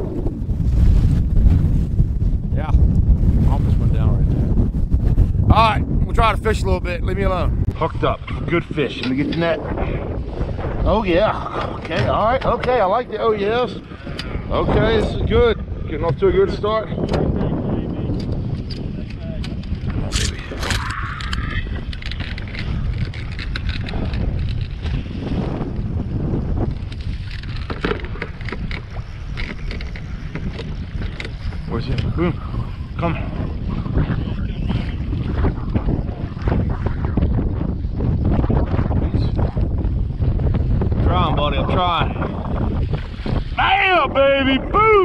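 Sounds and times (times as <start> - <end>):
wind buffeting microphone: 0.0 - 45.0
waves slapping boat hull: 3.5 - 45.0.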